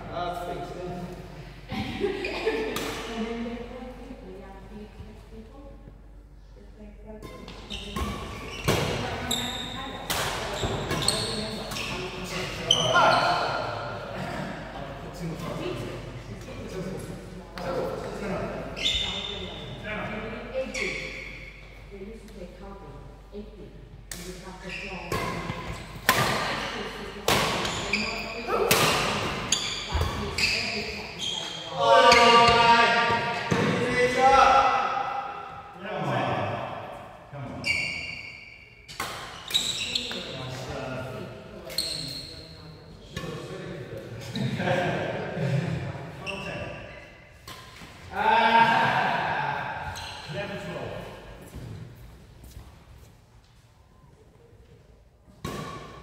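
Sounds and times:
racket hitting shuttlecock: 25.1 - 27.9, 28.5 - 30.1.

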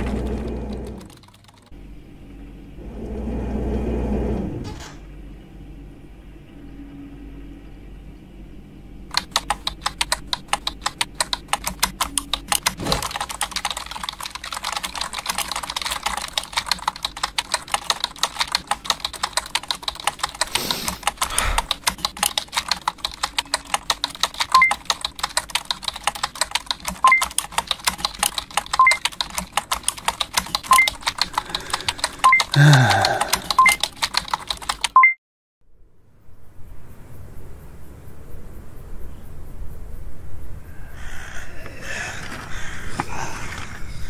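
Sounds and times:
typing on keyboard: 0.0 - 1.8, 9.1 - 35.2.

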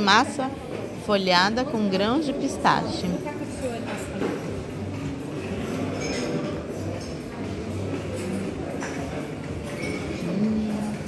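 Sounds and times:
background music: 0.0 - 11.0
murmur of voices: 0.0 - 11.0
dishes clinking: 5.8 - 7.2.

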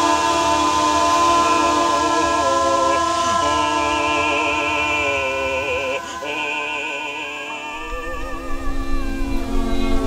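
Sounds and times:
voices singing a cappella: 0.0 - 10.0.

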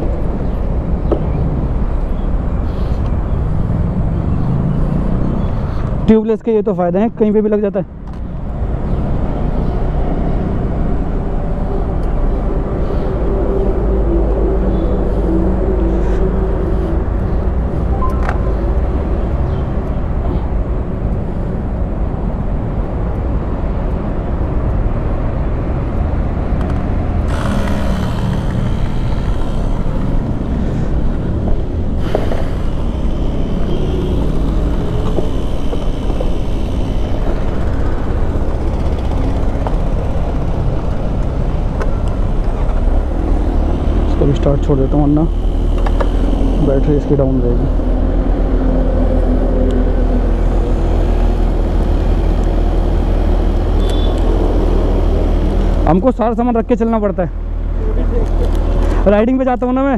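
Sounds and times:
hiss: 32.0 - 33.8.

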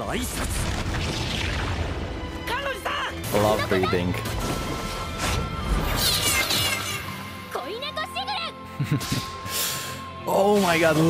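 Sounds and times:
fight scene music: 0.0 - 11.0
high-pitched character dialogue: 6.1 - 8.6.

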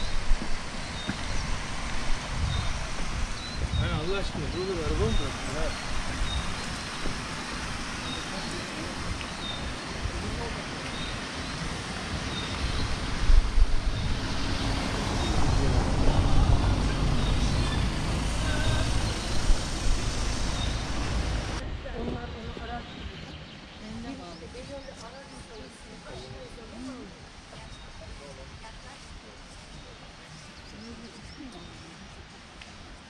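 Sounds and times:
loud low rumble: 12.6 - 23.2.

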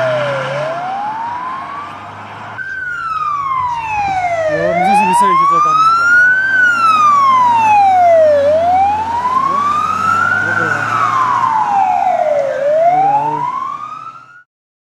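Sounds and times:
emergency siren wailing: 0.0 - 14.5.

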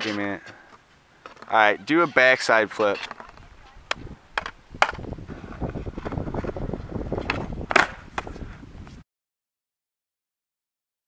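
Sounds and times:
skateboard wheels on concrete: 0.0 - 9.0
skateboard clacks: 2.7 - 6.6, 7.2 - 8.4.

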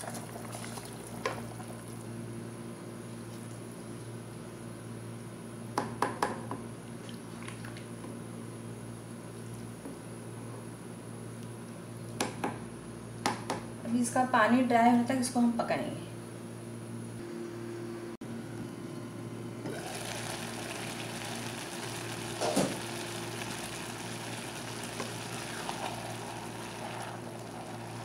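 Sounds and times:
water boiling and bubbling: 0.0 - 2.3, 6.9 - 8.2, 19.7 - 28.0
rice being poured: 19.8 - 28.0.

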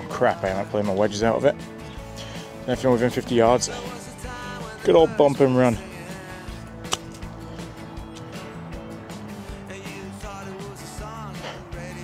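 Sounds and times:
background music: 0.0 - 12.0
golf club striking ball: 6.8 - 7.3.

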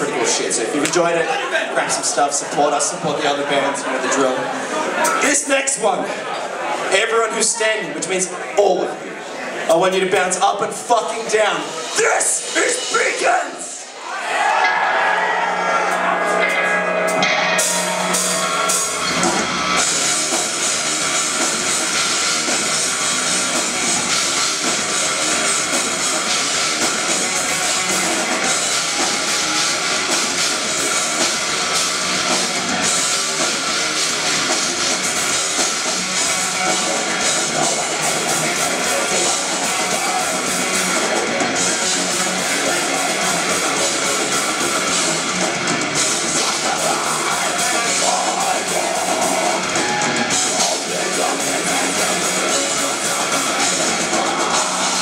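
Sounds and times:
metal band playing live: 0.0 - 8.8, 9.8 - 55.0.

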